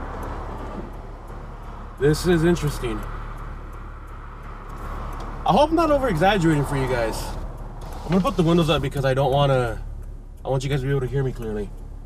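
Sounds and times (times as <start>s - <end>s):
car engine running: 0.0s - 12.0s
outdoor traffic: 0.0s - 12.0s.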